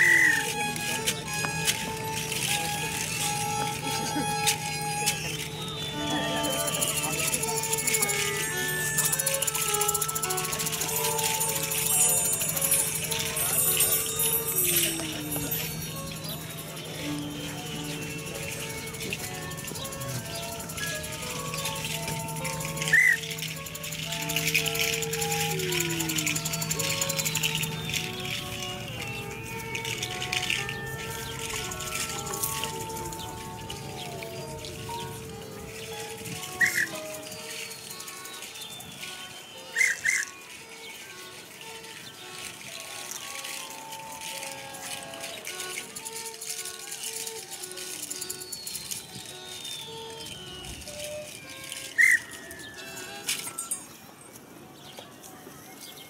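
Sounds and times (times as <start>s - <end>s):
sharp high squeaks: 0.0s - 42.0s, 44.4s - 53.9s.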